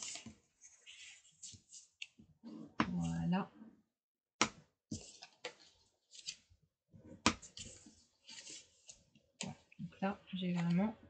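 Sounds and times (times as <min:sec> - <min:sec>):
cardstock rustling and scraping: 0:00.0 - 0:02.9, 0:04.9 - 0:06.5, 0:07.3 - 0:09.6.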